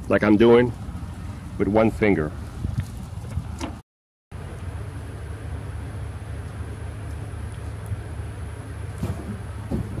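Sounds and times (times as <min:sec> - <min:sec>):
low outdoor rumble: 0:00.0 - 0:10.0
brief bumps: 0:08.9 - 0:10.0.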